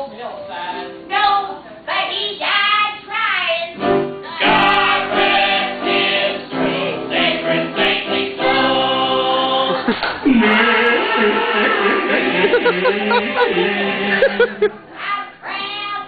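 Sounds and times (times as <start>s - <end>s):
sustained musical accompaniment: 3.8s - 14.9s
woman singing: 4.3s - 4.7s.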